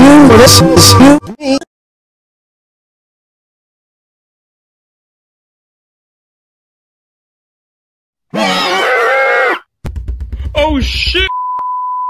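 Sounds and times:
person shouting: 0:08.4 - 0:09.6.

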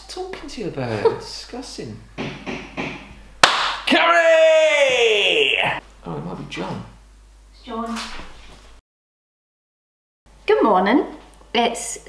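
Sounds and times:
sharp knock: 0:02.2 - 0:03.9.

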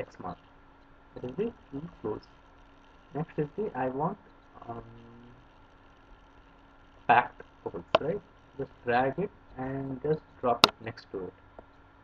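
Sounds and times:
person saying um: 0:04.6 - 0:05.4.

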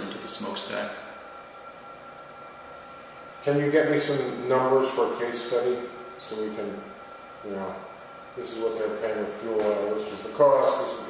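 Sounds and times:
faint steady tones: 0:00.0 - 0:11.0
steady hiss: 0:00.0 - 0:11.0.

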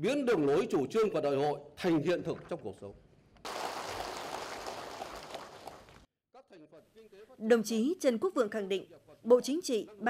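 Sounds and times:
audience applauding: 0:03.5 - 0:06.1.

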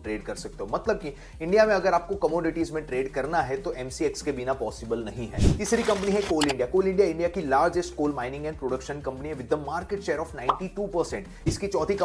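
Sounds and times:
man talking: 0:00.0 - 0:12.0
sharp click: 0:06.0 - 0:06.6.

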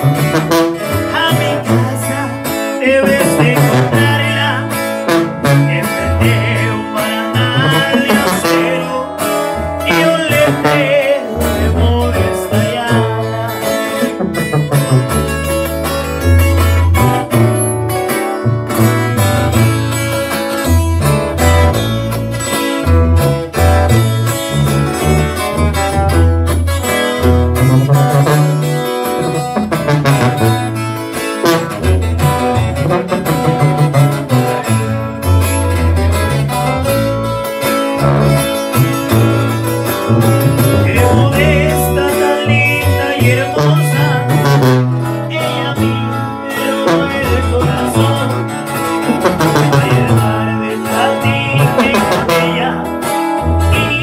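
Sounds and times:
brass horn playing: 0:00.0 - 0:54.0
small live band playing: 0:00.0 - 0:54.0
strummed acoustic guitars: 0:00.0 - 0:54.0
tuba bass line: 0:00.0 - 0:54.0.

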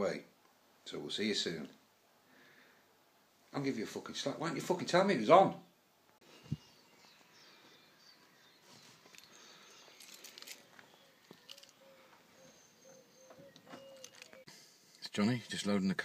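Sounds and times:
distant birds calling: 0:05.6 - 0:14.9.

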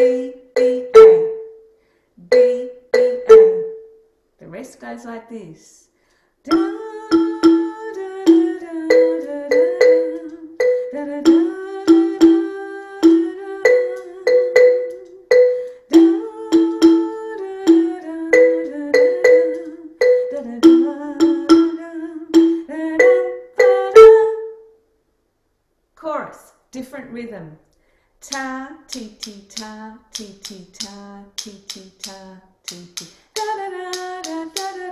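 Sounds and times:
woman singing: 0:00.0 - 0:01.2, 0:02.2 - 0:02.9, 0:06.5 - 0:24.6, 0:28.2 - 0:34.9
xylophone struck with mallets: 0:00.0 - 0:04.0, 0:06.5 - 0:24.7.

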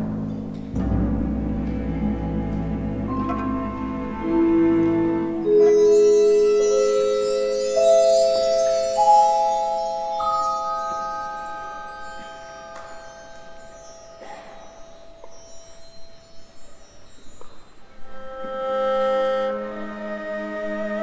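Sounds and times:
high shimmer: 0:05.4 - 0:18.6
mallet percussion ringing notes: 0:05.4 - 0:18.8.

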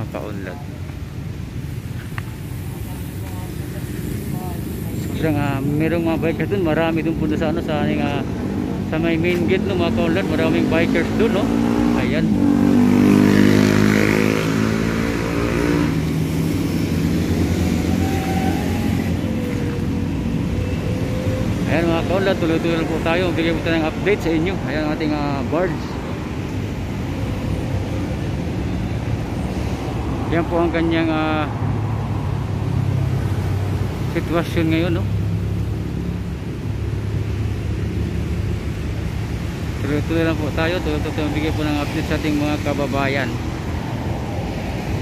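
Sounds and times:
traffic hum: 0:00.0 - 0:45.0.

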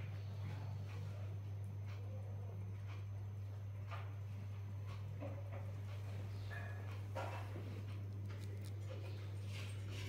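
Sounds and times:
steady low hum: 0:00.0 - 0:10.0
faint clicks and rustles: 0:02.8 - 0:10.0.

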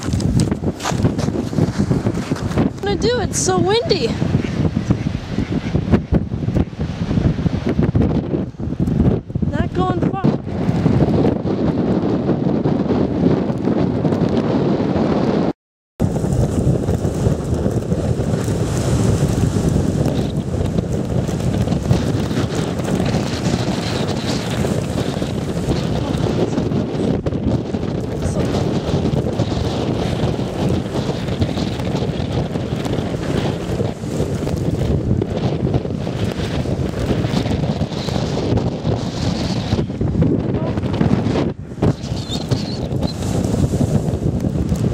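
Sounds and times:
strong wind buffeting microphone: 0:00.0 - 0:44.9.

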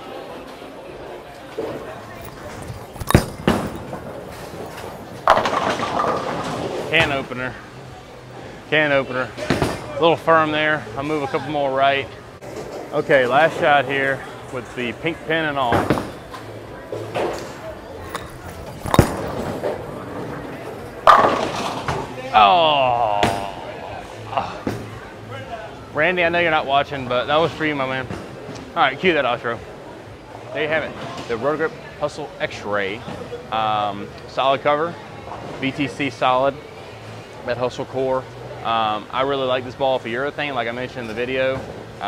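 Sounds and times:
din of bowling lanes: 0:00.0 - 0:25.2, 0:38.7 - 0:42.0
faint voices: 0:00.0 - 0:26.4
bowling ball rolling: 0:01.2 - 0:07.2, 0:15.7 - 0:22.2
bowling pins clattering: 0:01.6 - 0:07.2, 0:16.9 - 0:22.1
bowling ball thud on lane: 0:18.2 - 0:19.8.

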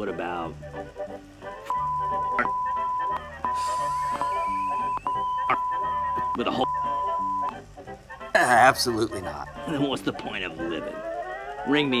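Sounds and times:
high censor beep: 0:01.7 - 0:07.5.

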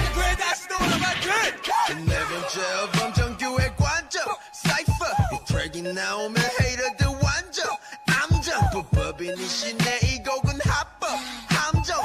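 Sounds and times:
rapping over a hip hop beat: 0:00.0 - 0:12.0
heavy kick drum: 0:03.2 - 0:04.0, 0:08.4 - 0:09.2, 0:10.0 - 0:10.8.

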